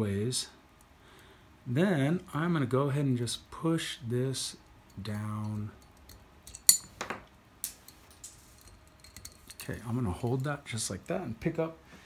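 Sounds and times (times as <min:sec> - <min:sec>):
metal parts clicking and clinking: 0:04.9 - 0:10.5
sharp metallic click with ring: 0:05.4 - 0:07.0.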